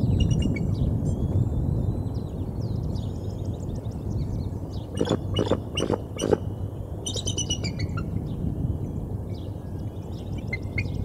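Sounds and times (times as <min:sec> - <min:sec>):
songbirds chirping: 0:00.0 - 0:11.0
eagle chittering call: 0:05.0 - 0:06.5.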